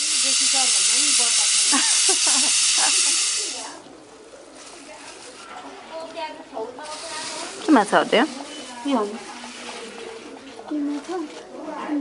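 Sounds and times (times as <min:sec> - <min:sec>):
pressure cooker steam hissing: 0:00.0 - 0:03.8, 0:06.8 - 0:10.1.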